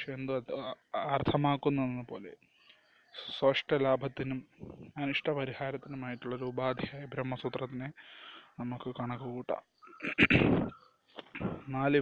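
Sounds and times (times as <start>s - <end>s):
man narrating: 3.2s - 8.0s, 8.6s - 9.7s, 11.6s - 12.0s
rough vocal burst: 11.3s - 11.7s.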